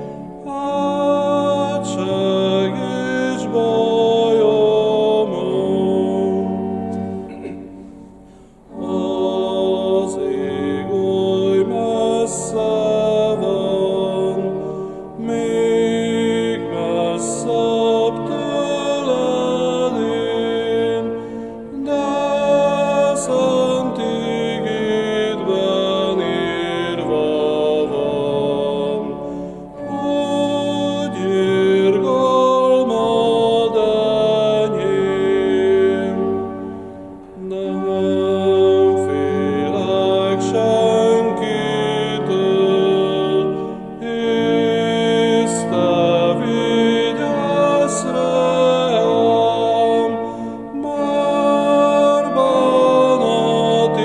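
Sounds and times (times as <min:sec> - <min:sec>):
man singing a hymn: 0:00.0 - 0:07.4, 0:08.7 - 0:54.0
pipe organ chords: 0:00.0 - 0:54.0.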